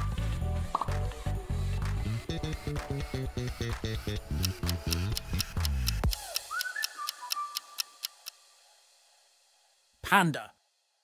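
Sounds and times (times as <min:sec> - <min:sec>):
countdown timer ticking: 0:02.3 - 0:08.4.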